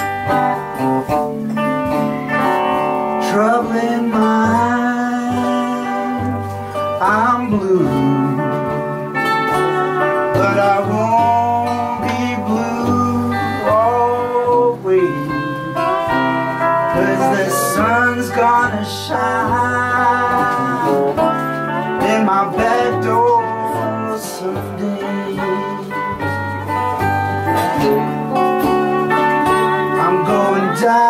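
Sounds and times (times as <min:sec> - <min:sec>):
blues guitars playing: 0:00.0 - 0:31.0
person singing: 0:01.6 - 0:31.0.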